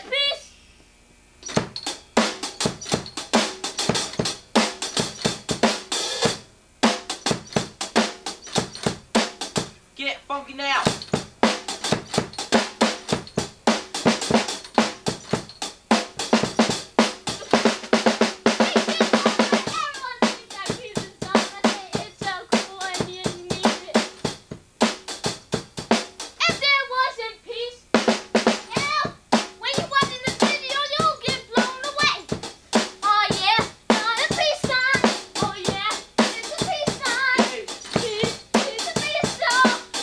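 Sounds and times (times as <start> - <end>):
drum kit playing: 1.4 - 9.8, 10.8 - 27.1, 27.9 - 40.0
person calling out: 18.6 - 21.3.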